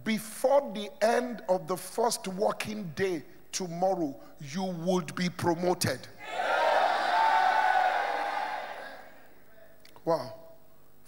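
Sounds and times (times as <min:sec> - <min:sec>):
congregation cheering and shouting: 0:06.2 - 0:09.3.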